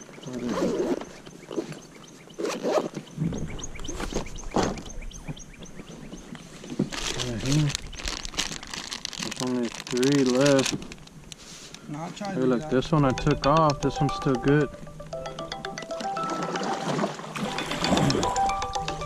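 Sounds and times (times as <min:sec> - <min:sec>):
plastic bag rustling: 0:06.7 - 0:11.8
fishing tackle clicks and knocks: 0:13.0 - 0:14.8.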